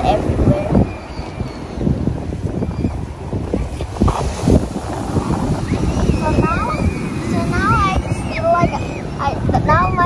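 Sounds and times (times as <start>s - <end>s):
beach surf: 0.0s - 10.0s
wind buffeting microphone: 0.0s - 10.0s.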